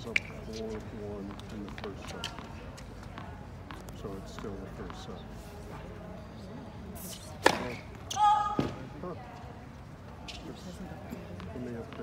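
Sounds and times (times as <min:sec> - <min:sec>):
tennis racket striking ball: 0:07.4 - 0:07.9.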